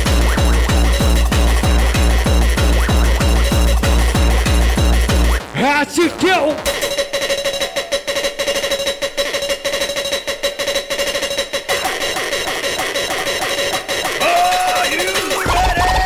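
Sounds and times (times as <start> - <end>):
fast rattling drum roll: 6.7 - 16.0.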